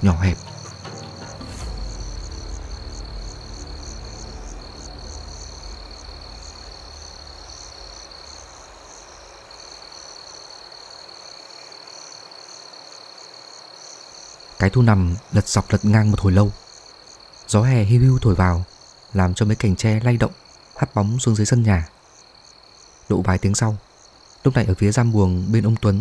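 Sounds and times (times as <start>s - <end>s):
low rumbling drone: 0.0s - 9.6s
crickets and insects chirring: 0.0s - 26.0s
frogs croaking: 0.0s - 26.0s.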